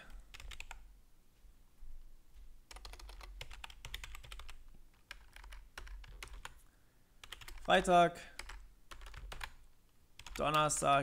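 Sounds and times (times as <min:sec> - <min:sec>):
typing on a computer keyboard: 0:00.3 - 0:00.8, 0:02.7 - 0:06.6, 0:07.2 - 0:09.6, 0:10.2 - 0:10.8.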